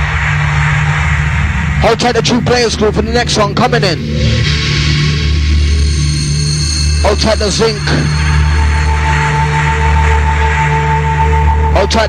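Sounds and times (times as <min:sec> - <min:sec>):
held low bass note: 0:00.0 - 0:12.0
person speaking over music: 0:07.0 - 0:08.1, 0:11.7 - 0:12.0.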